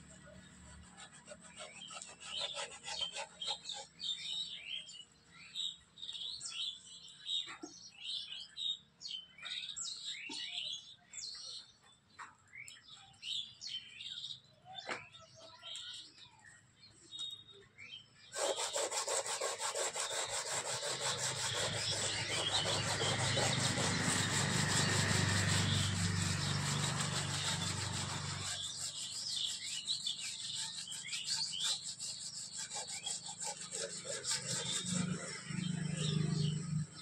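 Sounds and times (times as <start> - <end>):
birds chirping: 0.0 - 37.0
hands rubbing over wooden panel: 18.4 - 29.6.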